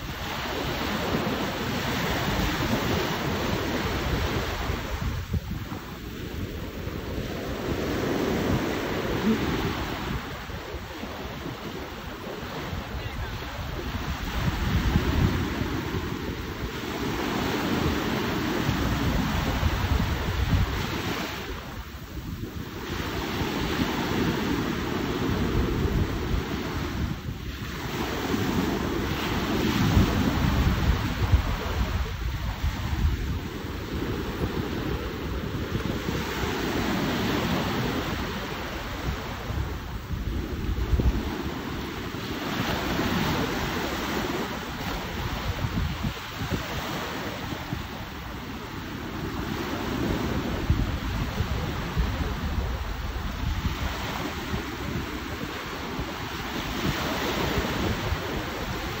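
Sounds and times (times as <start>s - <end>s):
sea waves washing in: 0.0s - 59.0s
wind buffeting microphone: 0.0s - 59.0s.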